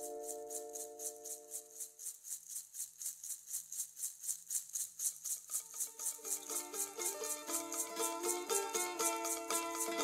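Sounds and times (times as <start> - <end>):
shaker rhythm: 0.0 - 10.0.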